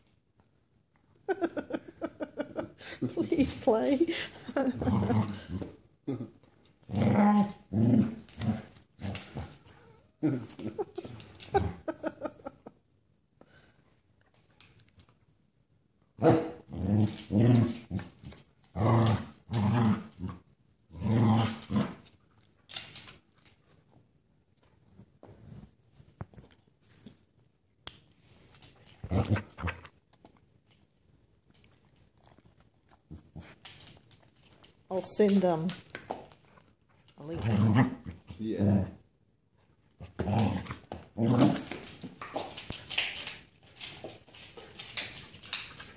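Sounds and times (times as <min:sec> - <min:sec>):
person laughing: 0:01.3 - 0:05.4, 0:10.2 - 0:12.8
dog growling in play: 0:04.5 - 0:11.9, 0:16.2 - 0:22.0, 0:29.0 - 0:29.9, 0:37.3 - 0:39.0, 0:40.0 - 0:41.9
dog claws clicking on hardwood floor: 0:21.4 - 0:23.8, 0:27.9 - 0:37.6, 0:40.1 - 0:45.9.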